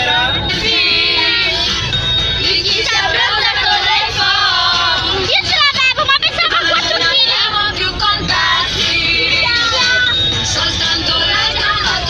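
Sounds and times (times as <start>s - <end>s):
bus engine rumble: 0.0s - 12.0s
children singing along to music: 0.0s - 12.0s.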